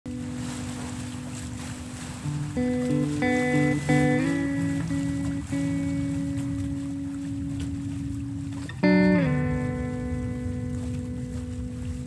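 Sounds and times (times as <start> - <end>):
ocean water rushing: 0.1 - 12.0.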